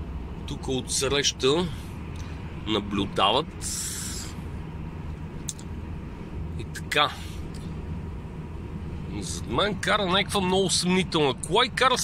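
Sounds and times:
truck engine and road drone: 0.0 - 12.0.

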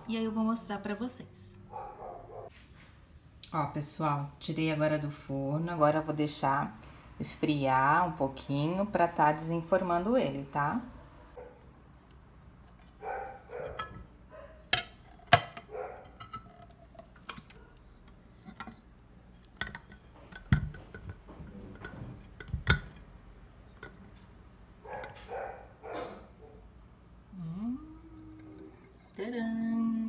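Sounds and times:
metal mold clinking on glass plate: 13.7 - 14.0.

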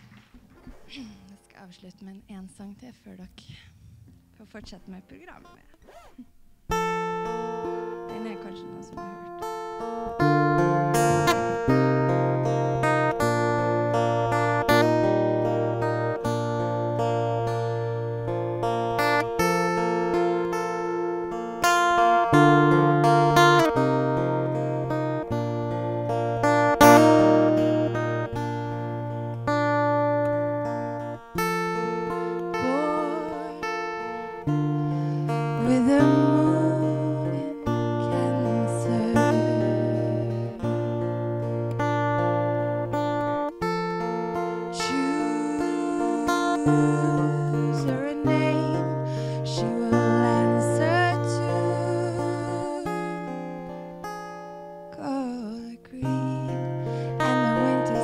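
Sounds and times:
acoustic guitar strumming and picking: 0.0 - 58.0
woman singing: 31.8 - 34.4, 35.3 - 40.6, 44.6 - 53.7, 54.9 - 58.0.

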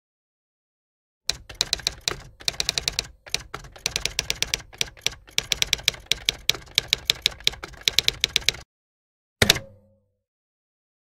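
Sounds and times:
typewriter keys clacking: 1.3 - 8.6.

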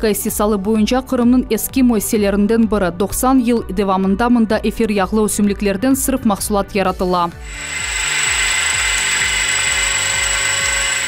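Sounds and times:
mixer motor whining: 7.4 - 11.0.

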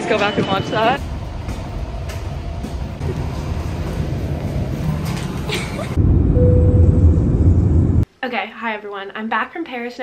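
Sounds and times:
jet engine cabin rumble: 1.0 - 8.0.

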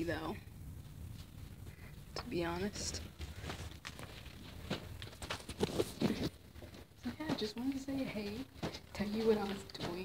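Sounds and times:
footsteps on carpet: 2.9 - 10.0.

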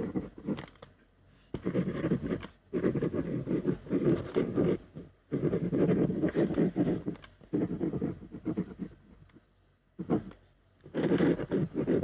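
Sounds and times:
pen scratching on paper: 0.0 - 0.7, 1.4 - 9.4, 10.0 - 12.0.

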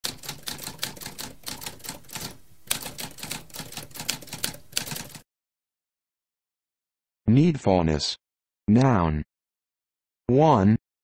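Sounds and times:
typewriter keys typing: 0.0 - 5.2.

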